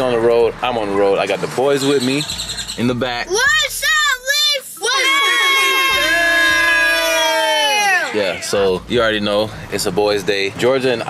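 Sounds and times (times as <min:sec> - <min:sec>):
child shouting a long note: 0:03.4 - 0:08.0.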